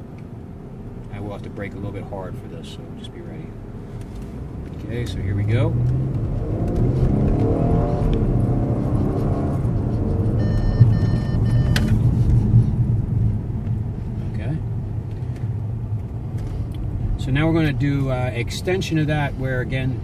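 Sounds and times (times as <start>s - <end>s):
road and tyre rumble: 0.0s - 20.0s
car engine accelerating: 2.6s - 20.0s
electronic warning tone: 10.3s - 12.0s.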